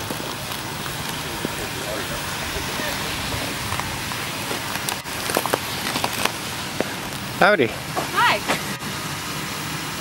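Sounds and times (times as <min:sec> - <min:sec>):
indistinct voices: 0:00.0 - 0:08.6
steady background hiss: 0:00.0 - 0:10.0.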